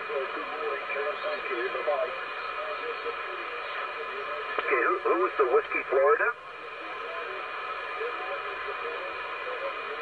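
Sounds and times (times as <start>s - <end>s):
radio receiver hiss: 0.0s - 10.0s
person speaking over radio: 4.6s - 6.4s.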